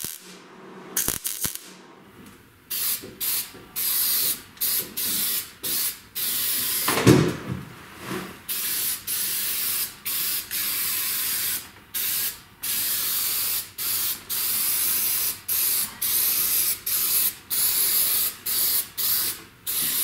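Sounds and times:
spray paint can hissing: 2.7 - 6.9, 8.5 - 20.0.

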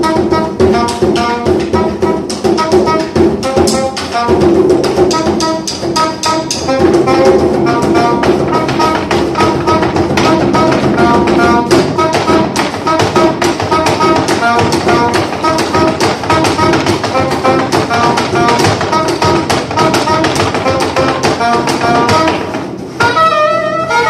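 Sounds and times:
soprano saxophone: 0.0 - 4.4, 5.1 - 22.4, 23.0 - 24.0
violin melody: 0.0 - 4.4, 5.0 - 24.0
frame drum: 0.0 - 23.3.

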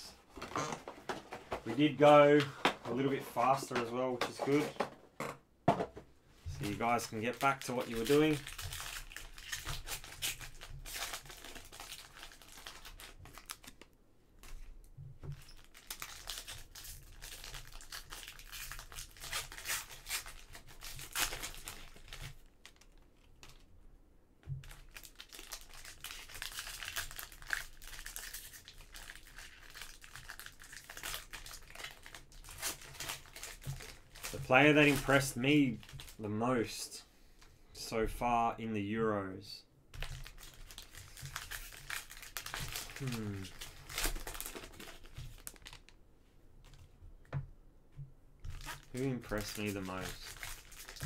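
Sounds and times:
foil wrapper crinkling and tearing: 6.6 - 14.7, 15.3 - 23.6, 24.6 - 36.2, 40.0 - 46.0, 48.4 - 51.0.

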